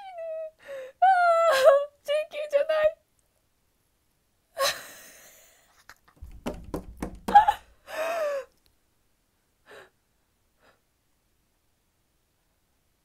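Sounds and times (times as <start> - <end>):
woman laughing: 4.6 - 5.6, 7.2 - 8.4
woman's falling aah: 7.1 - 8.4
woman gasping: 7.3 - 8.6.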